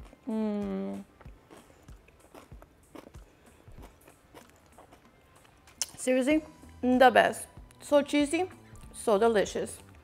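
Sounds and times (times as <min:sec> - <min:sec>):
chewing crunches: 0:00.9 - 0:06.0.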